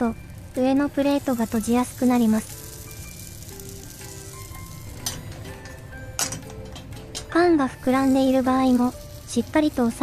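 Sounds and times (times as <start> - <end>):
patty sizzling in sandwich maker: 0.0 - 10.0.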